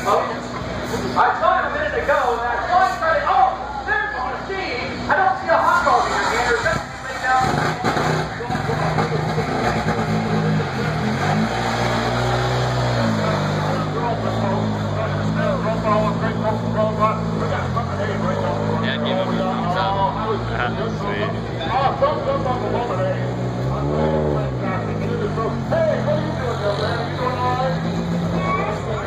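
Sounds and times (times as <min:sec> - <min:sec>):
crowd chatter: 0:00.0 - 0:29.0
car engine at low revs: 0:05.7 - 0:29.0.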